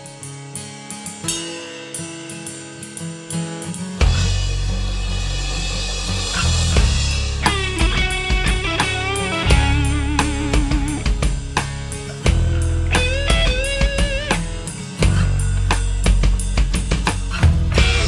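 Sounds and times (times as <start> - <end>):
rock band playing: 4.0 - 18.0
lead guitar bending notes: 6.8 - 16.4, 17.6 - 18.0.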